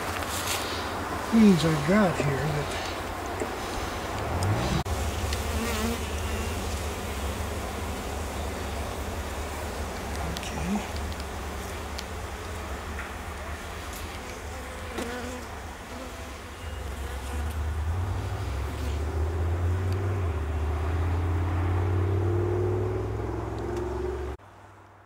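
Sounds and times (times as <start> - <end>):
honeybees buzzing: 0.0 - 24.4.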